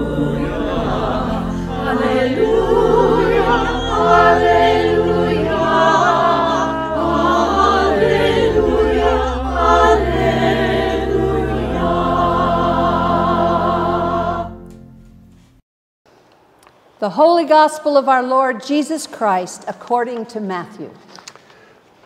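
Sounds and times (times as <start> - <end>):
church choir singing: 0.0 - 14.8
organ bass notes: 0.0 - 15.3.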